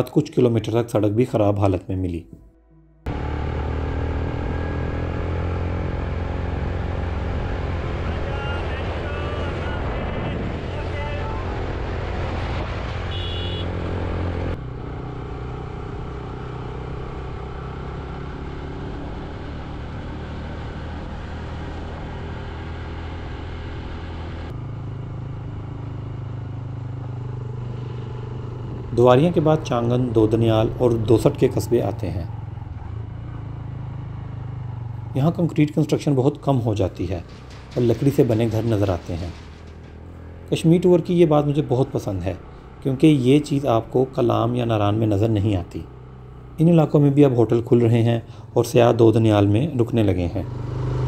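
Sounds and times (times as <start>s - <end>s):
tyres on gravel road: 3.1s - 51.0s
vehicle engine under load: 3.1s - 51.0s.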